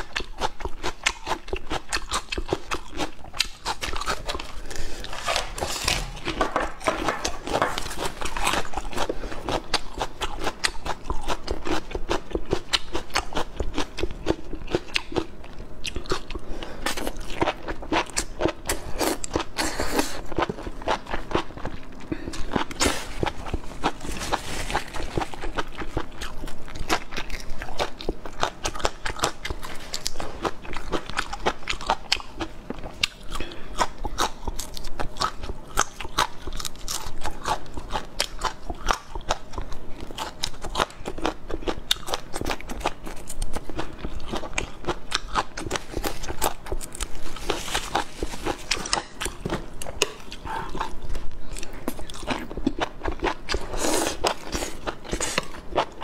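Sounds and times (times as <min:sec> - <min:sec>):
wet chewing: 0:00.0 - 0:56.0.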